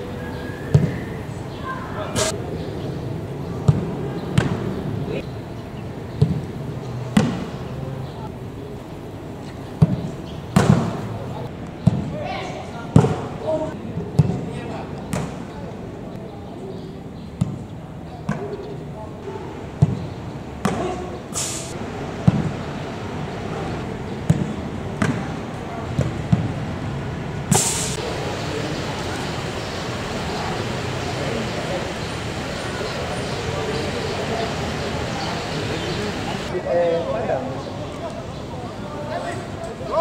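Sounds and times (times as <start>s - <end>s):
footballs being kicked: 6.2s - 6.5s
players calling out: 27.9s - 40.0s.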